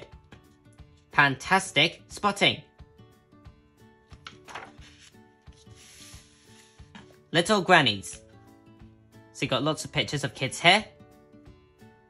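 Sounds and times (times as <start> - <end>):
magazine paper rustling: 4.1 - 7.0.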